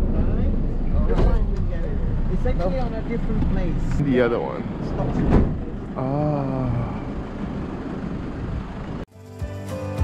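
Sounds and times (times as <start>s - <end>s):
street noise: 0.0s - 10.0s
background music with held notes: 9.1s - 10.0s.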